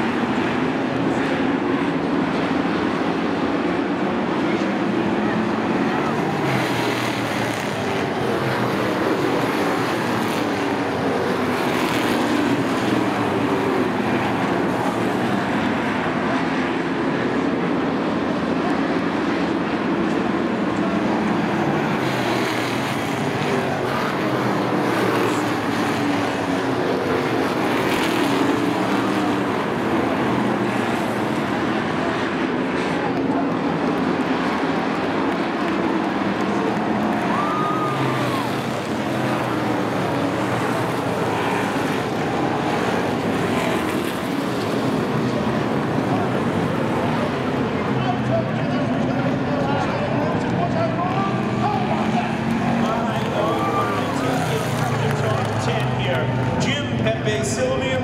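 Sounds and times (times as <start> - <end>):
race car engines droning: 0.0 - 58.0.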